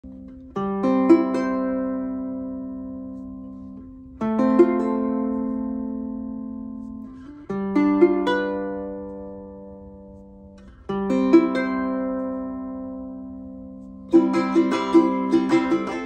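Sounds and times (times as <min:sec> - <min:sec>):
ukulele arpeggiated chords: 0:00.0 - 0:16.0.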